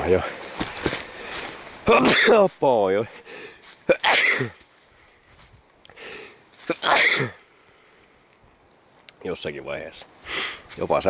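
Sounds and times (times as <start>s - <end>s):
man sneezing: 1.9s - 2.4s, 3.9s - 4.6s, 6.7s - 7.4s.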